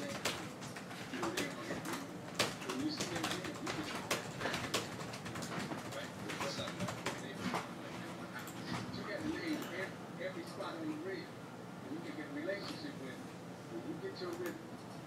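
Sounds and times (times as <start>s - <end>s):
faint voices murmuring: 0.0s - 14.7s.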